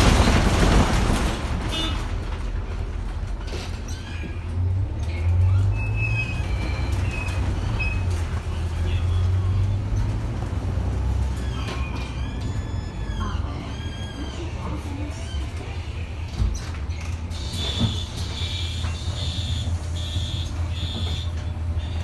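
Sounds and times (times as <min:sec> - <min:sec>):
bus engine rumble: 0:00.0 - 0:22.0.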